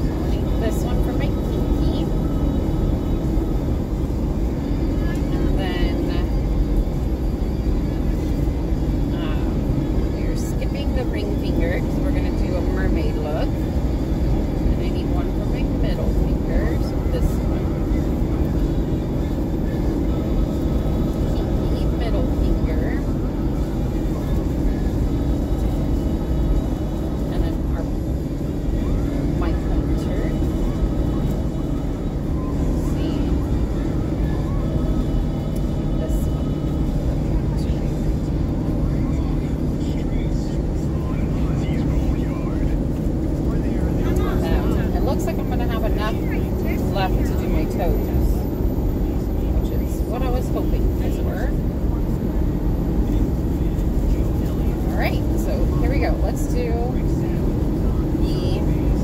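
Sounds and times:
car cabin road and engine noise: 0:00.0 - 0:59.0
faint voice-like sounds: 0:00.0 - 0:59.0.

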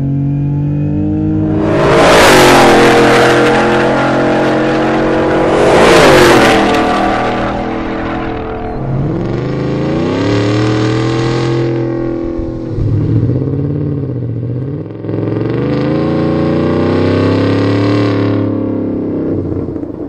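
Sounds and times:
car engine revving: 0:00.0 - 0:20.0.

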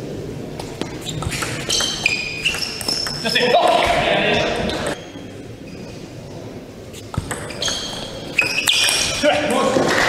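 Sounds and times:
shoes squeaking on floor: 0:00.8 - 0:06.2, 0:07.0 - 0:09.3.

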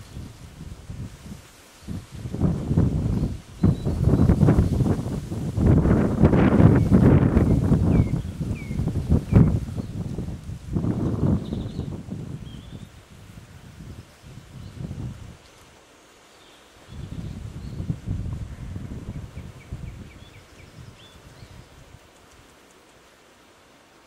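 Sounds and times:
beavers chewing branches: 0:21.7 - 0:23.8.

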